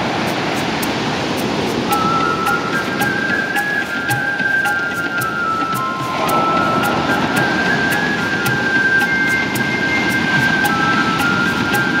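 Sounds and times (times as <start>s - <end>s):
ocean surf washing onto beach: 0.0s - 12.0s
soft new age music: 0.0s - 12.0s.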